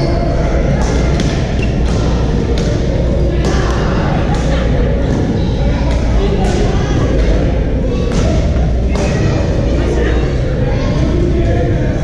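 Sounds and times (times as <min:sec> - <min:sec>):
low rumble of sports hall: 0:00.0 - 0:12.0.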